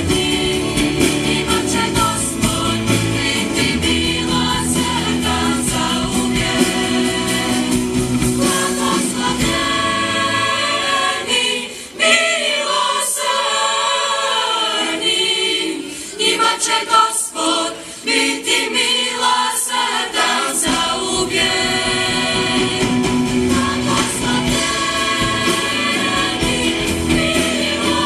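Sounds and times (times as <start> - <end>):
mixed choir singing a hymn: 0.0 - 28.0.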